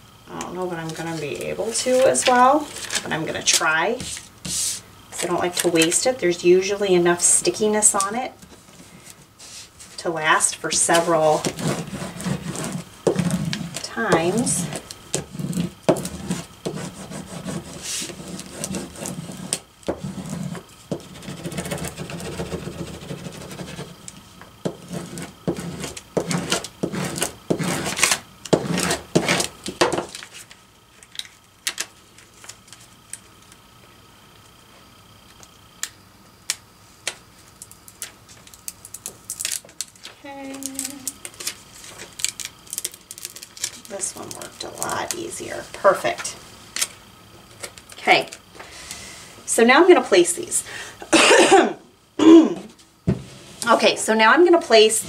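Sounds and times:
paper handling: 0.9 - 6.0, 37.0 - 45.2
plastic scraper rubbing on paper: 0.9 - 6.0, 10.4 - 24.0, 24.6 - 30.5.

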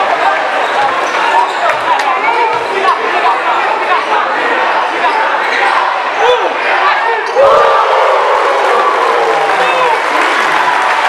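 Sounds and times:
murmur of crowd voices: 0.0 - 11.0
sneakers squeaking: 0.6 - 2.7.

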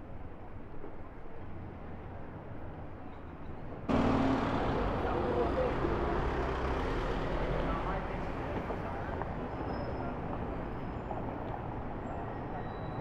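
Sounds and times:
city traffic rumble: 0.0 - 13.0.

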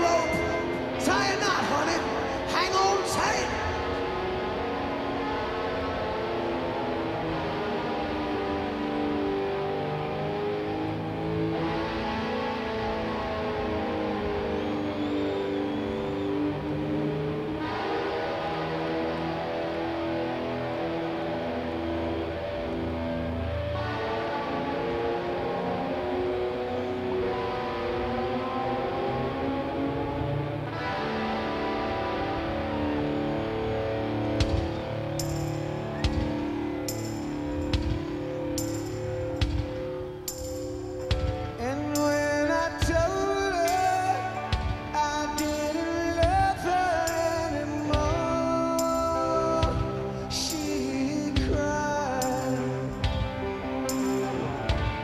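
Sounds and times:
sustained electric guitar chords: 0.0 - 55.0
rock band playing live: 30.7 - 55.0.

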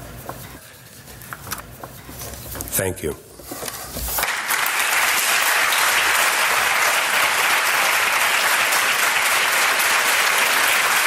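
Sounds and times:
audience applause: 4.2 - 11.0.

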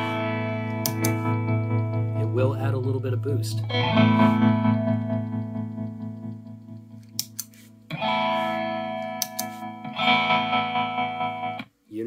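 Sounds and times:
electric guitar chord ringing: 0.0 - 7.1, 7.9 - 11.7.

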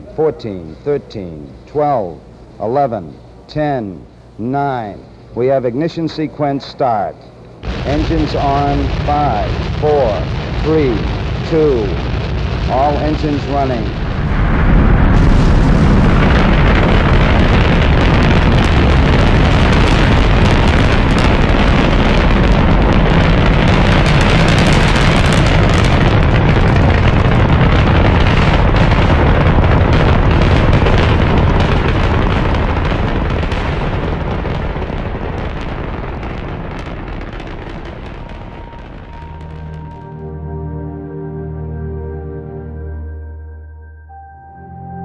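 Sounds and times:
rocket engines rumbling: 0.0 - 40.7.

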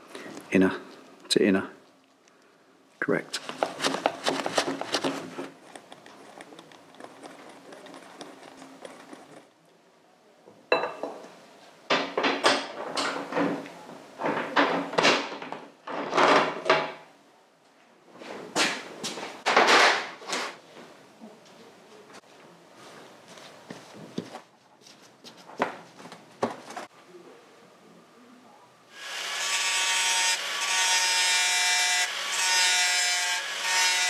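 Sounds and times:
metal chain clinking and rattling: 5.6 - 9.5.

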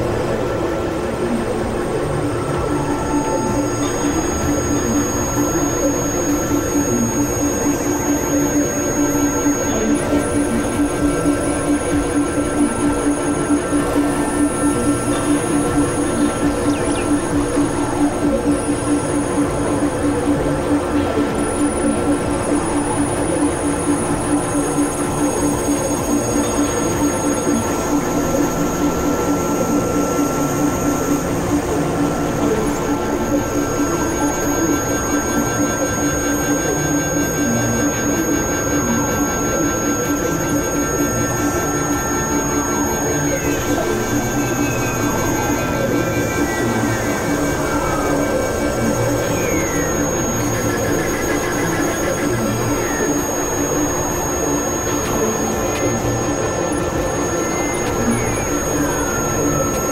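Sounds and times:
electronic noise drone music: 0.0 - 59.9.

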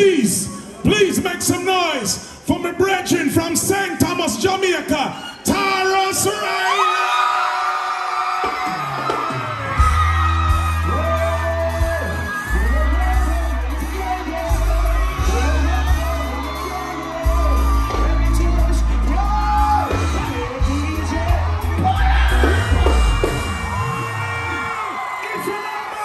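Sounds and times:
crowd whooping and yelling: 4.8 - 26.0
live reggae band: 8.6 - 25.3
heavy bassline: 9.8 - 24.5.

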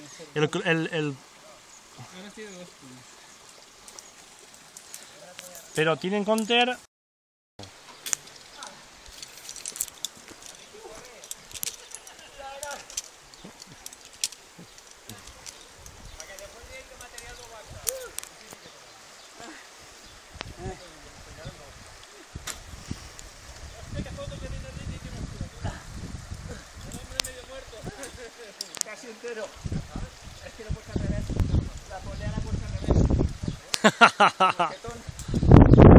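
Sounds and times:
shallow river rushing: 7.6 - 32.4.

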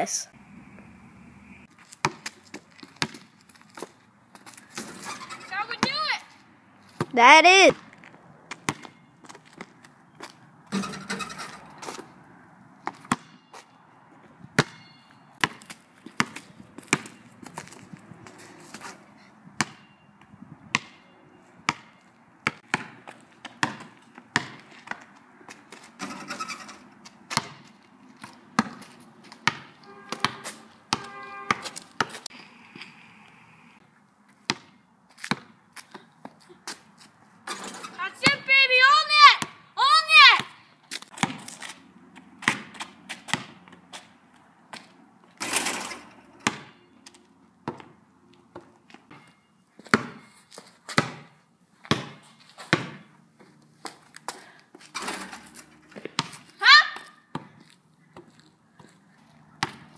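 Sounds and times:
basketball bouncing on asphalt: 1.8 - 12.2, 12.8 - 32.3, 34.3 - 45.5, 46.3 - 59.9.

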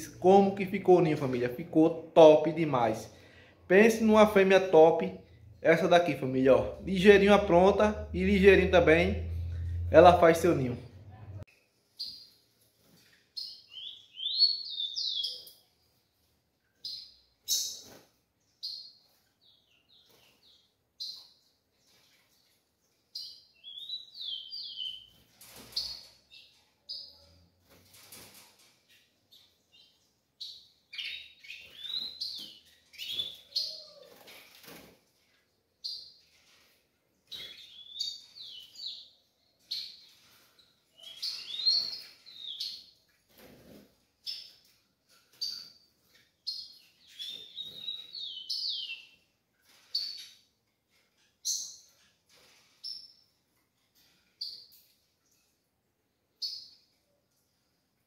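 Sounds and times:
caged birds rustling: 11.8 - 54.9
sparrow chirping: 13.4 - 15.7, 23.1 - 27.3, 29.3 - 34.1, 37.3 - 43.0, 46.4 - 50.4.

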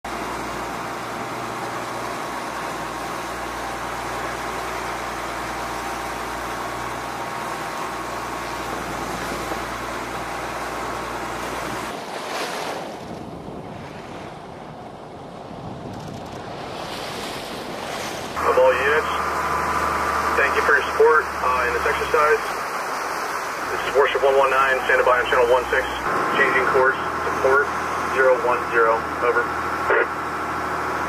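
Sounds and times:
sea water washing: 0.0 - 31.0
wind: 0.0 - 31.0.

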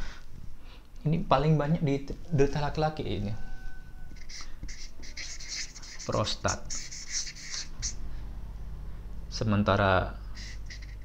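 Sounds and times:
marker scratching on paper: 4.2 - 8.0, 10.4 - 11.0.

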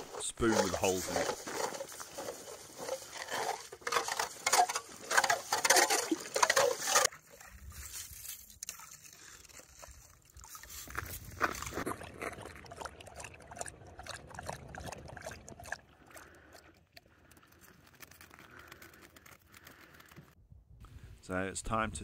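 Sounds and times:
spoon scraping ice: 0.0 - 7.1
ice auger churning slush: 0.0 - 20.2
dog lapping water: 8.7 - 17.7.

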